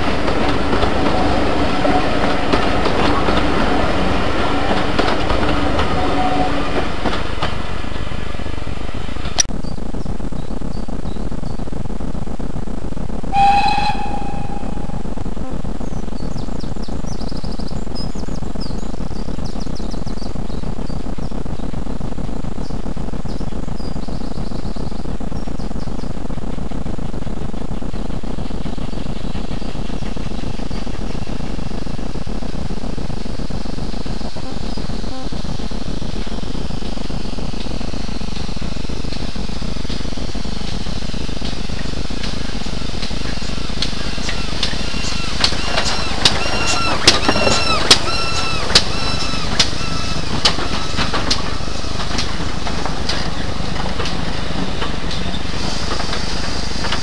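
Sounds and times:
train wheels clattering on rail: 0.0 - 9.8, 13.2 - 57.0
steam locomotive whistle: 0.7 - 3.4, 5.5 - 7.0, 13.3 - 15.2, 44.1 - 51.8.

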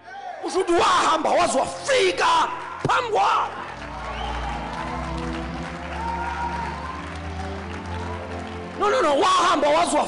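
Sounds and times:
crowd applause and cheering: 2.6 - 10.0.

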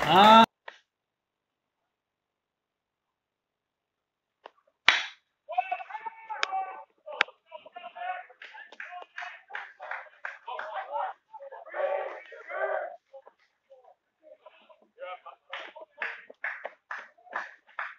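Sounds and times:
voices shouting: 0.0 - 0.5, 5.5 - 16.2
small sharp snaps: 0.6 - 0.9, 4.4 - 5.2
bat hitting baseball: 4.9 - 5.2.

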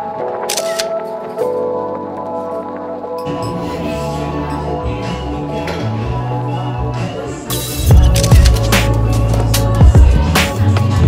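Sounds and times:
background music with layered tones: 0.0 - 11.0.

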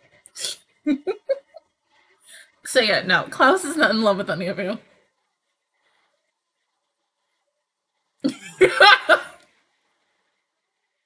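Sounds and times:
woman laughing: 0.9 - 1.6, 8.3 - 9.4.

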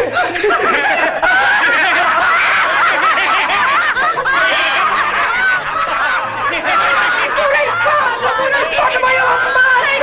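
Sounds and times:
crowd laughing loudly: 0.0 - 10.0.

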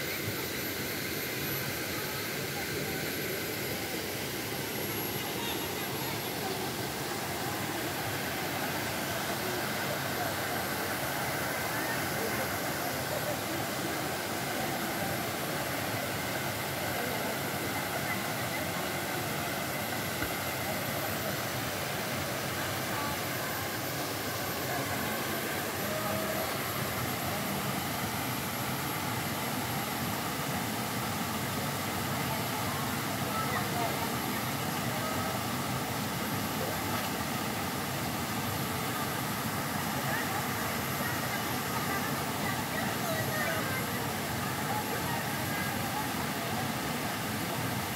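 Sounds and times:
waterfall into rock pool: 0.0 - 47.9
people's voices: 1.3 - 47.9.

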